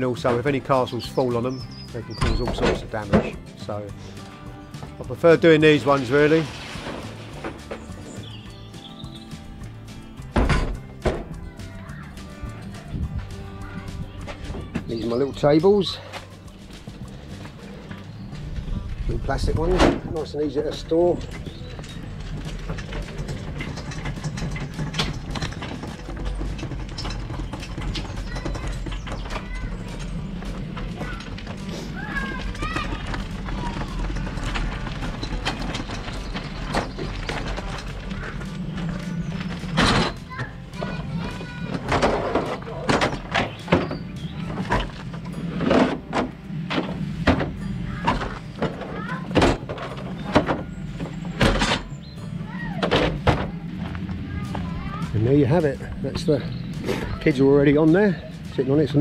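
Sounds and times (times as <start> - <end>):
background music: 0.0 - 59.0
hand trolley rolling over gravel: 0.0 - 59.0
plastic tables knocking on van floor: 10.2 - 11.4, 21.2 - 52.0, 52.8 - 54.1.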